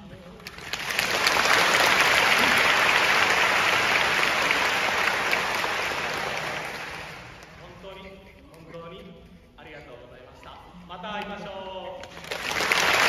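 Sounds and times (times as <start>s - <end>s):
audience applauding: 0.4s - 7.6s, 12.0s - 13.0s.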